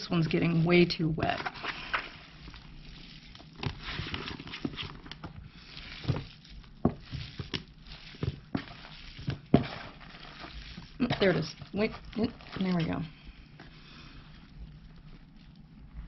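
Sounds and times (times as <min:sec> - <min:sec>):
hands digging in wet soil: 0:00.0 - 0:16.0.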